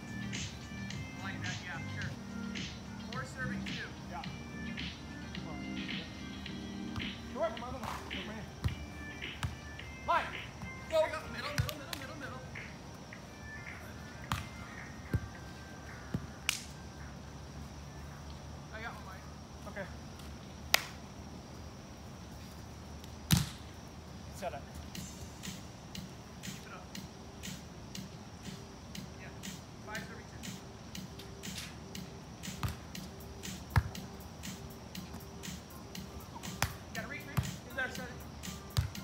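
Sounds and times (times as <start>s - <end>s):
hands slapping volleyball: 11.5s - 12.1s, 16.5s - 16.7s, 20.7s - 21.0s.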